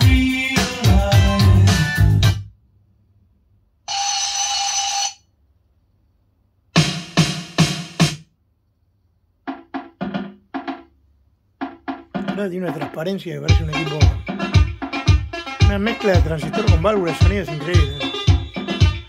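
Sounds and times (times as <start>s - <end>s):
pop music over loudspeakers: 0.0s - 2.4s, 13.5s - 19.0s
heavy drum hits: 11.6s - 19.0s.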